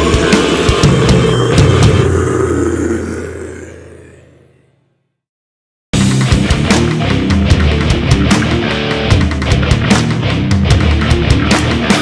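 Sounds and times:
death metal band final hit: 0:00.0 - 0:04.4.

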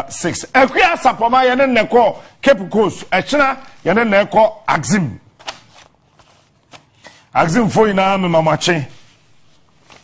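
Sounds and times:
man speaking: 0:00.0 - 0:05.3, 0:07.3 - 0:09.0.

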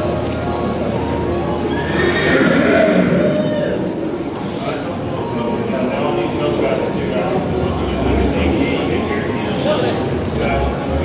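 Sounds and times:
background music: 0:00.0 - 0:04.7
horse whinnying: 0:01.6 - 0:04.1.

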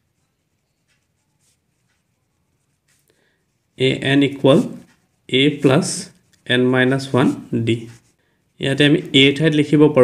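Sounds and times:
person speaking: 0:01.2 - 0:10.0.

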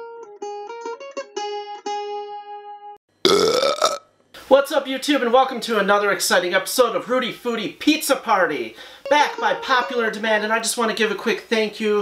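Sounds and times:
man burping: 0:03.2 - 0:04.1.

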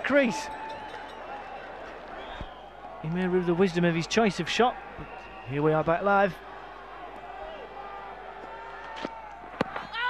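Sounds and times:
crowd murmuring: 0:00.0 - 0:10.0.

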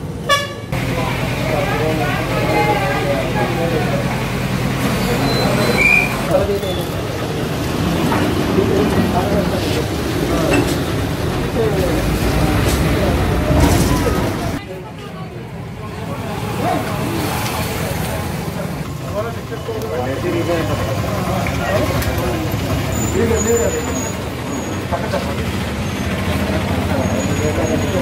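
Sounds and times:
people talking indistinctly: 0:00.7 - 0:28.0.

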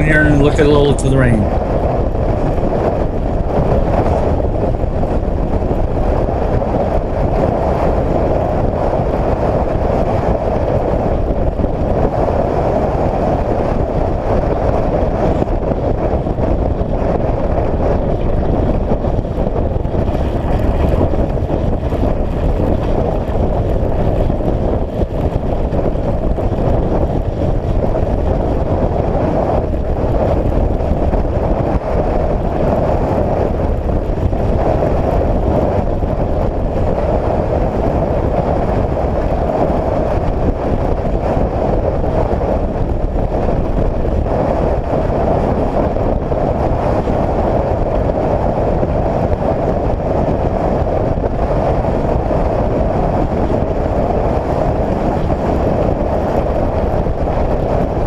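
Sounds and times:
wind on microphone: 0:00.0 - 0:58.0
vehicle engine and tyre noise: 0:01.3 - 0:58.0.

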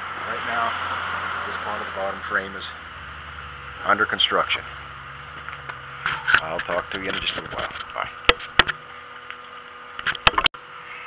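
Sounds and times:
steady background hum: 0:00.0 - 0:11.0
device handling clicks and knocks: 0:07.2 - 0:08.8.

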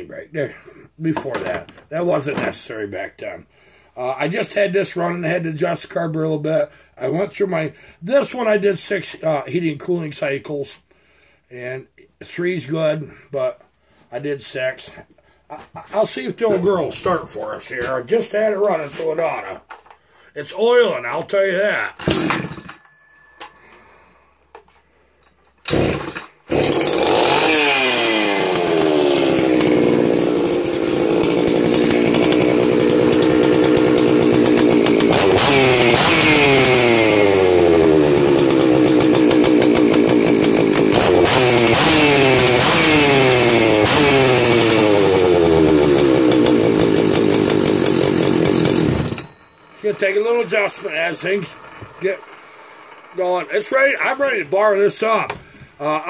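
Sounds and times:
chainsaw starting and revving: 0:25.6 - 0:56.0.

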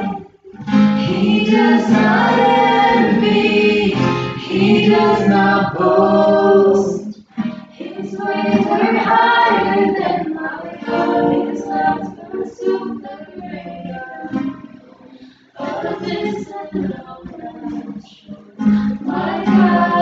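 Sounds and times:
group of women singing: 0:00.0 - 0:20.0.

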